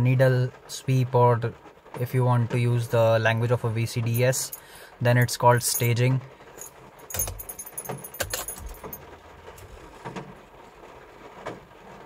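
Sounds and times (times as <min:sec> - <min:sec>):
car keys jangling: 0:06.6 - 0:09.8.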